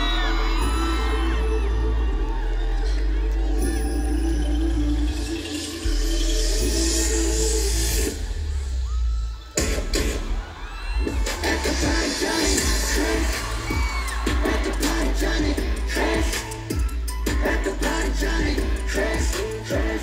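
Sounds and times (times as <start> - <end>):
fans cheering: 0.0 - 5.6, 8.3 - 20.0
pop music over stadium speakers: 0.0 - 20.0.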